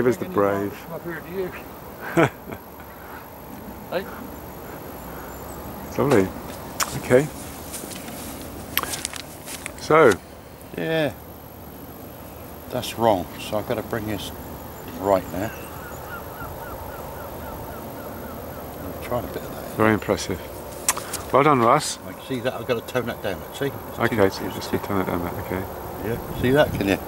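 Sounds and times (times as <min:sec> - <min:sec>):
bird chirping: 0:00.0 - 0:26.8
outdoor background noise: 0:00.0 - 0:27.0.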